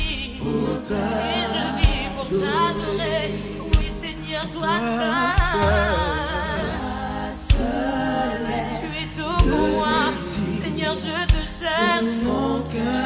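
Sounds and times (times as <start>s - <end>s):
person singing with vibrato: 0.0s - 13.0s
band playing: 1.8s - 11.8s
deep drum hits: 7.5s - 8.0s, 9.4s - 9.9s.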